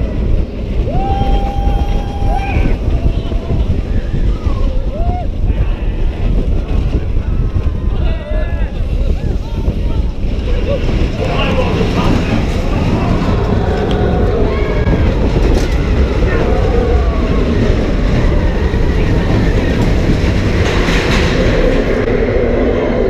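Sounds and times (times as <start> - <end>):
roller coaster rumbling on track: 0.0 - 23.0.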